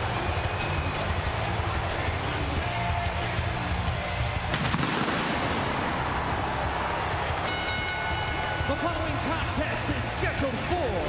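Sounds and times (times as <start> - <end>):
wrestling entrance music: 0.0 - 11.0
pyrotechnic bangs: 4.5 - 6.6.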